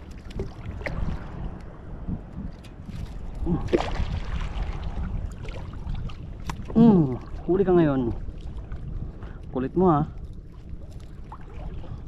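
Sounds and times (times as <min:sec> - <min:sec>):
low rumble of wind and water: 0:00.0 - 0:12.0.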